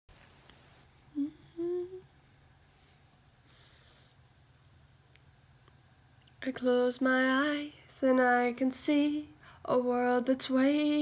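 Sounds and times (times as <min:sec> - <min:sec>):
woman humming: 0:01.1 - 0:02.2.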